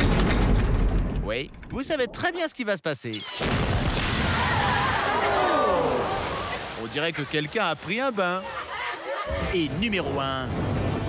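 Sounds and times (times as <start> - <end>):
water gushing: 3.3 - 9.7
crowd shouting: 4.2 - 6.6, 8.3 - 9.6.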